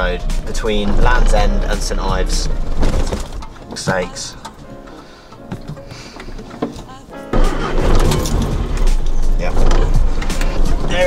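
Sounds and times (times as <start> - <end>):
car engine running: 0.0 - 5.9, 7.3 - 11.0
background music: 0.0 - 11.0
tyres rumbling on road: 0.0 - 11.0.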